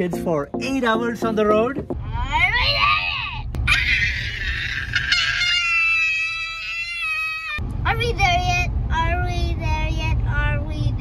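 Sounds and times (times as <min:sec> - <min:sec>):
car rumble: 0:00.7 - 0:11.0
child shrieking: 0:02.3 - 0:07.6.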